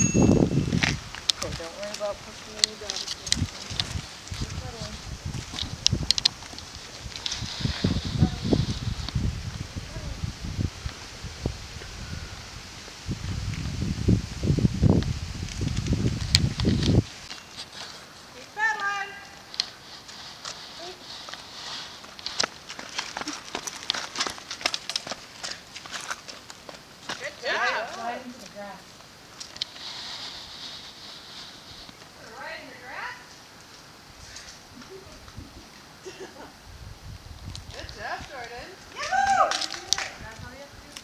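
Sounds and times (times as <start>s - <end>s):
low rumbling on microphone: 3.2s - 17.1s.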